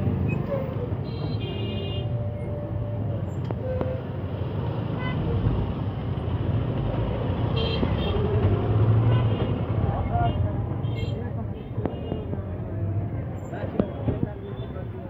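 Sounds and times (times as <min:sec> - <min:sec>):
vehicle engines rumbling: 0:00.0 - 0:15.0.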